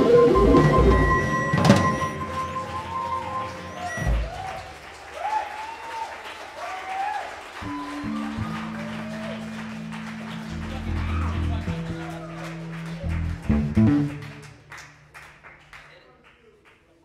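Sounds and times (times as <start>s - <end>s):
audience applause and cheering: 0.0s - 17.0s
whistles: 0.1s - 4.8s, 7.6s - 8.9s.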